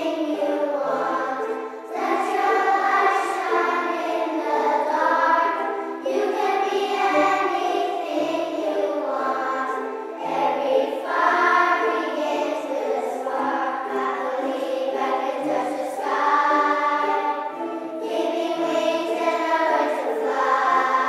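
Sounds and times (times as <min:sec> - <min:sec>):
children's choir singing: 0:00.0 - 0:21.0
strummed ukuleles: 0:00.0 - 0:21.0
wooden xylophones with mallets: 0:00.0 - 0:21.0.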